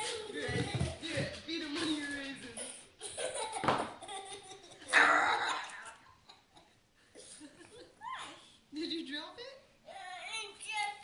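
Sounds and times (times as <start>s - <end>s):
young boy laughing: 3.0s - 6.6s.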